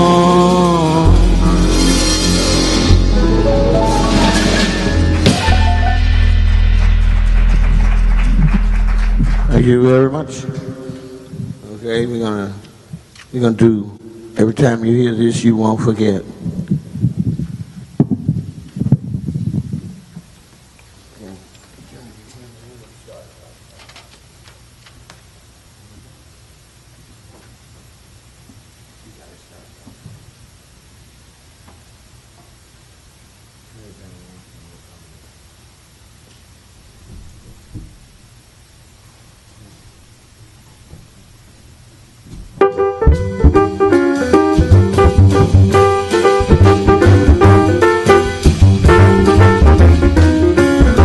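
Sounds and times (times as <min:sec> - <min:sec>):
piano: 0:00.0 - 0:11.2, 0:42.4 - 0:51.0
jazz combo playing: 0:00.0 - 0:11.6, 0:42.4 - 0:51.0
microphone handling rumble: 0:06.1 - 0:13.1, 0:15.8 - 0:20.7, 0:44.6 - 0:51.0.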